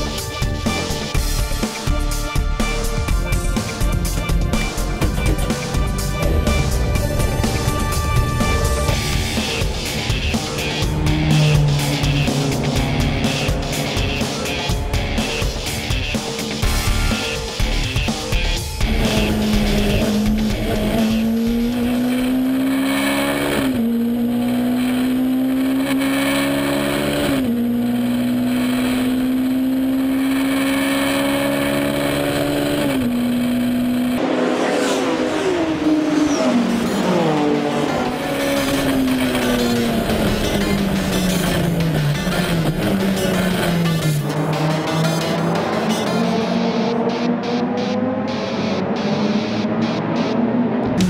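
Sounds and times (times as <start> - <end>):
race car engine accelerating: 0.0 - 51.0.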